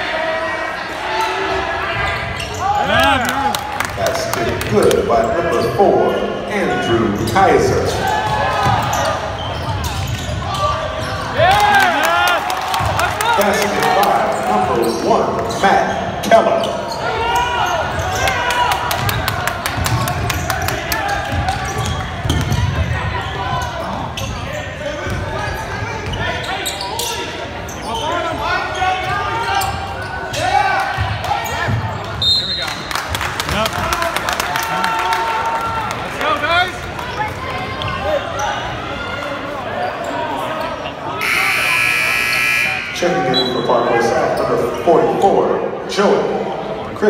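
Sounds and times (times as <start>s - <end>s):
voices of players and spectators: 0.0s - 47.0s
loud horn blast: 41.2s - 43.0s.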